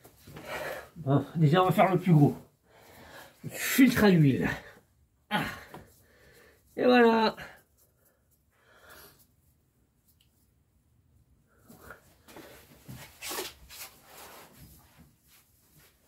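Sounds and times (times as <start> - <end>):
cloth rag rustling: 11.6 - 16.0.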